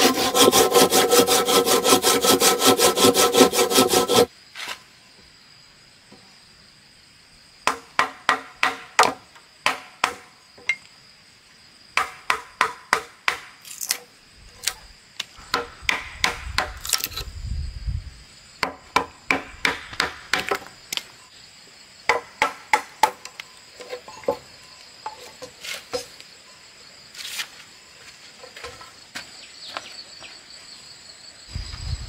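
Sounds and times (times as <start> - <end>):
machete chopping wood: 7.6 - 10.3, 12.0 - 14.0, 15.5 - 17.2, 18.6 - 20.7
high insect drone: 13.6 - 32.0.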